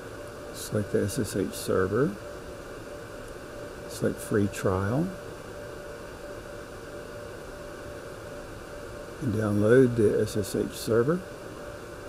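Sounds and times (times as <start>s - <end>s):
faint constant hum: 0.0s - 12.0s.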